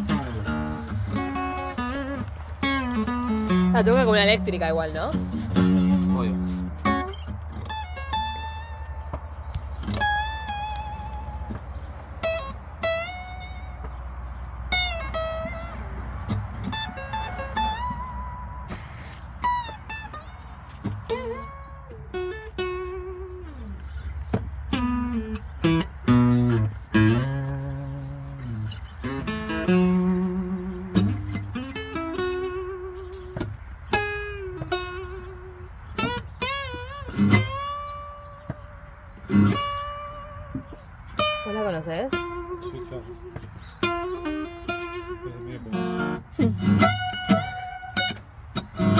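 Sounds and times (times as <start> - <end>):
fingerstyle acoustic guitar: 0.0 - 48.9.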